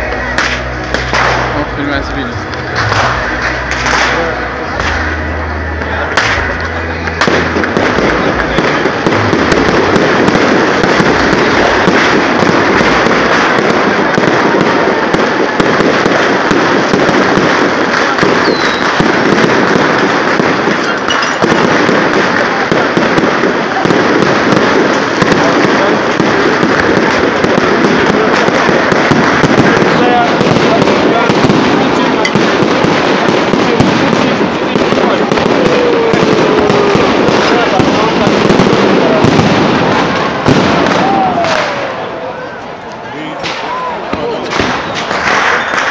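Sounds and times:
fireworks crackling and bursting: 0:00.0 - 0:45.9.

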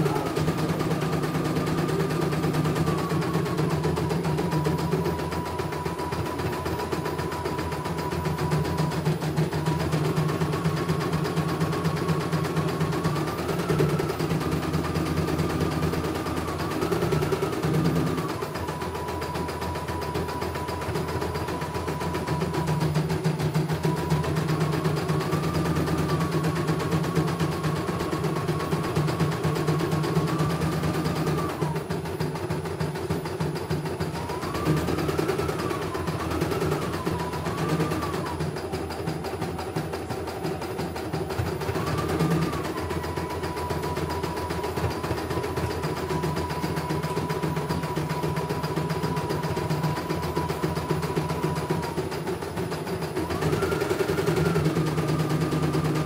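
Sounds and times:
embroidery machine stitching: 0:00.0 - 0:56.0
thin motor whine: 0:00.0 - 0:56.0.

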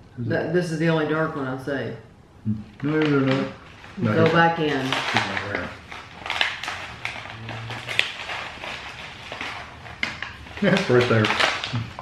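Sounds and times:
granola rattling inside pouch: 0:02.8 - 0:12.0
plastic snack pouch crinkling: 0:02.8 - 0:12.0.

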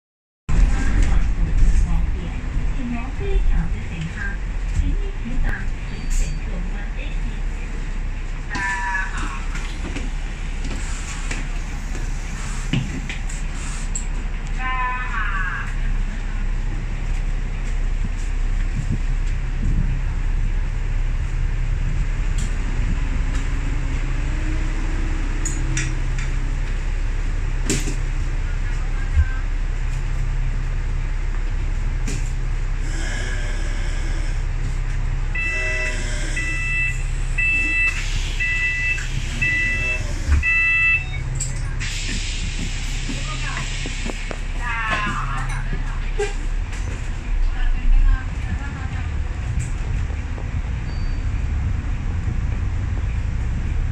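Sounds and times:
idling bus engine hum: 0:00.5 - 0:53.9
two-tone warning beeps: 0:35.4 - 0:41.4
air hiss: 0:41.8 - 0:44.3.

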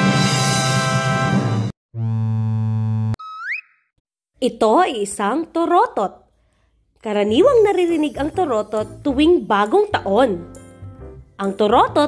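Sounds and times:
rising whistle: 0:03.2 - 0:03.9.

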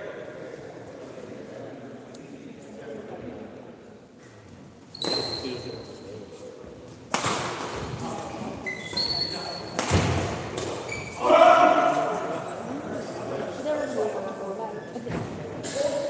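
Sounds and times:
shoes squeaking on floor: 0:04.8 - 0:06.1, 0:08.5 - 0:09.8, 0:10.8 - 0:11.2.

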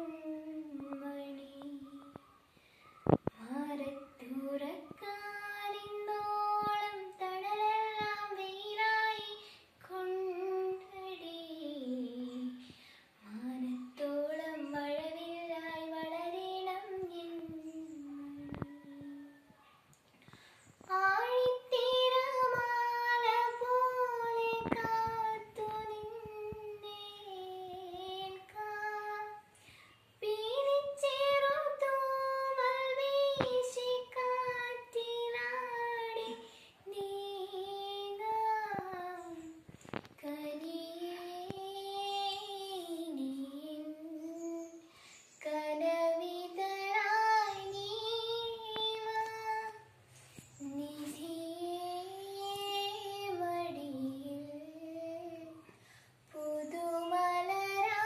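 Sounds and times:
woman singing unaccompanied: 0:00.0 - 0:02.2, 0:03.1 - 0:19.6, 0:20.8 - 0:29.6, 0:30.2 - 0:58.0
singer's breath: 0:20.1 - 0:20.8, 0:29.5 - 0:30.1, 0:44.9 - 0:45.4, 0:55.6 - 0:56.2.

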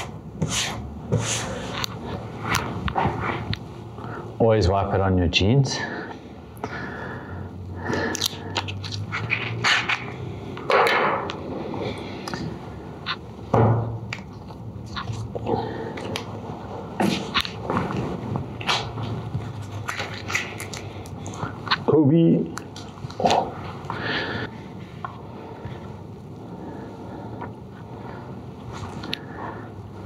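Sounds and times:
paper tape rustling and ripping: 0:08.1 - 0:10.2.

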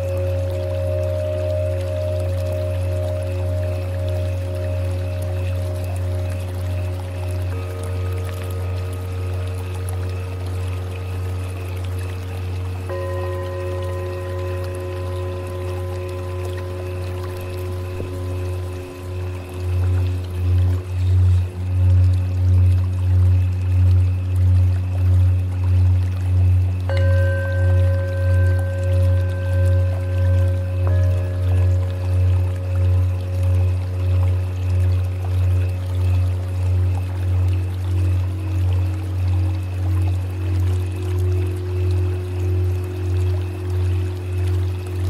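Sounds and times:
deep wavering hum: 0:00.0 - 0:45.0
singing bowls ringing: 0:00.0 - 0:45.0.

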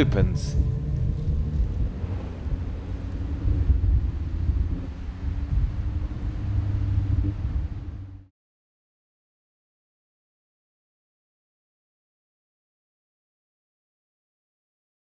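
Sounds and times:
car engine rumbling under load: 0:00.0 - 0:08.3.

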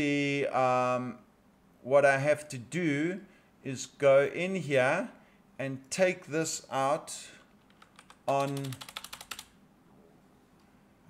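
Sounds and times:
keyboard keys tapping: 0:07.7 - 0:09.5.

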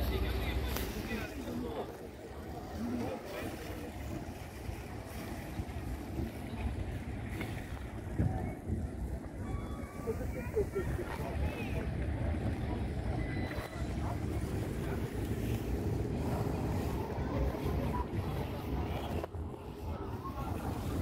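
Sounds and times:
faint scattered voices: 0:00.0 - 0:21.0
wind rumble on microphone: 0:02.4 - 0:21.0.

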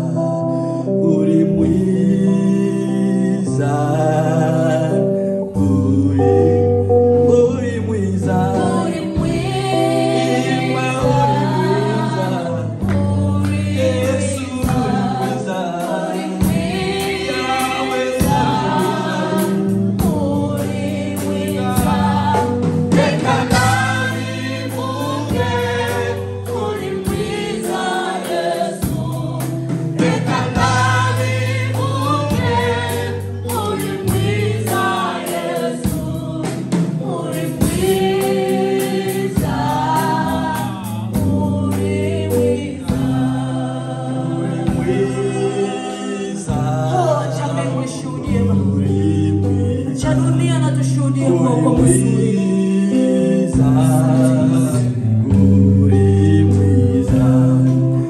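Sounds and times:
choir singing: 0:00.0 - 0:58.0
low bass notes: 0:00.0 - 0:58.0
drums: 0:08.2 - 0:58.0
woman singing into a microphone: 0:46.9 - 0:52.4.

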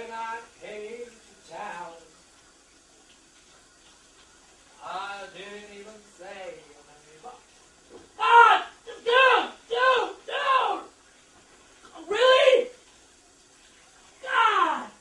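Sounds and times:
man yelling: 0:08.2 - 0:10.9, 0:12.0 - 0:12.8, 0:14.2 - 0:15.0.

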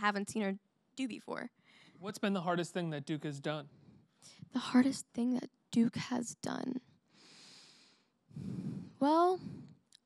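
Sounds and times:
person breathing into microphone: 0:07.1 - 0:09.8.

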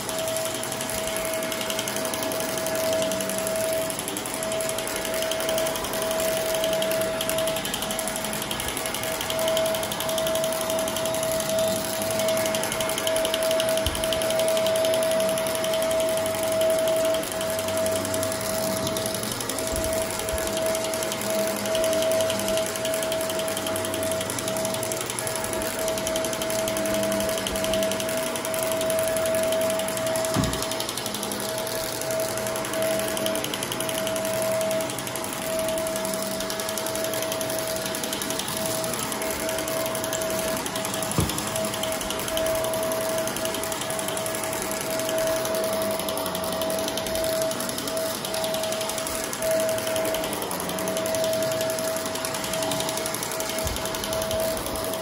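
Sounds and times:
vacuum cleaner motor whine: 0:00.0 - 0:55.0.

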